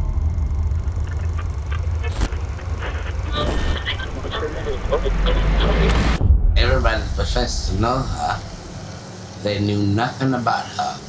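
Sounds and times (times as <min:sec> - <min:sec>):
low rumble: 0:00.0 - 0:09.8
indistinct voices: 0:00.0 - 0:11.0.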